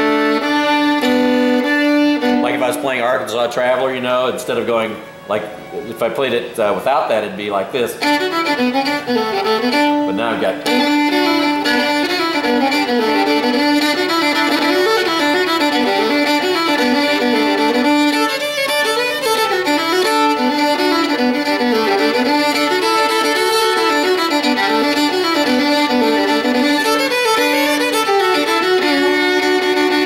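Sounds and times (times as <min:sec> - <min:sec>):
solo fiddle playing lively tune: 0:00.0 - 0:30.0.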